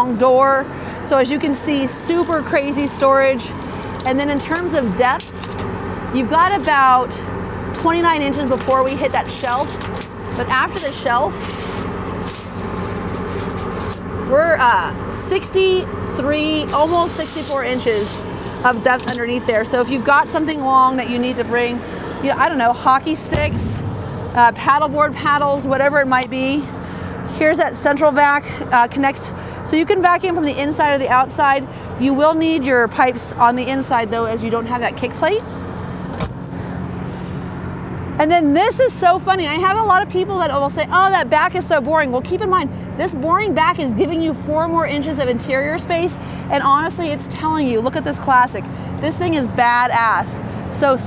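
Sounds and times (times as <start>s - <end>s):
engine running steadily: 0.0s - 51.0s
generator humming: 0.0s - 51.0s.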